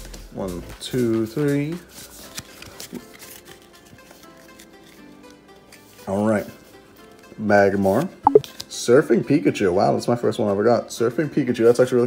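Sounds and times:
faint background music: 0:00.0 - 0:12.0
trading cards shuffling: 0:01.9 - 0:05.9.

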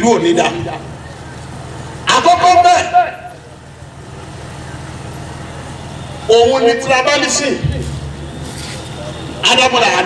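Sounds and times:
man speaking into a microphone: 0:00.0 - 0:01.0, 0:02.0 - 0:03.4, 0:06.3 - 0:08.0, 0:09.2 - 0:10.0.

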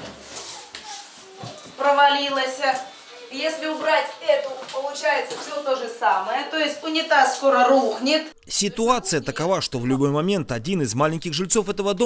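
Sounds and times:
woman speaking: 0:01.8 - 0:10.0.

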